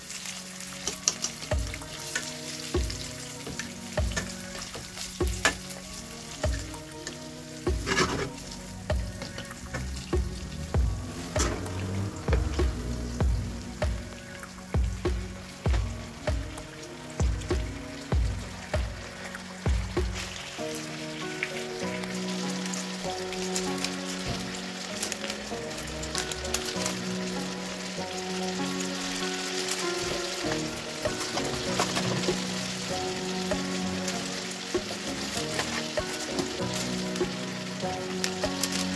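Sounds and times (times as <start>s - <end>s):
food sizzling in frying pan: 0.0s - 38.9s
melody of held notes: 0.0s - 38.9s
low thumping beat: 5.2s - 5.7s, 6.4s - 6.8s, 8.9s - 20.4s.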